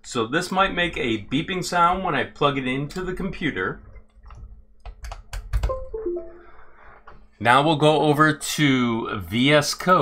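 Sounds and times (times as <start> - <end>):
computer device-connected chime: 5.7 - 6.5.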